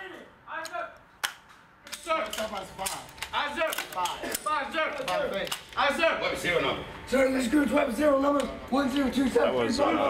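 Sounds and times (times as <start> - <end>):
men talking: 1.8 - 10.0.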